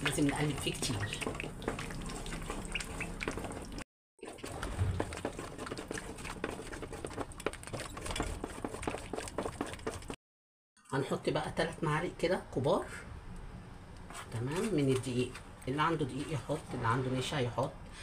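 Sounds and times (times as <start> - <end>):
thick soap paste squelching: 0.0 - 10.2.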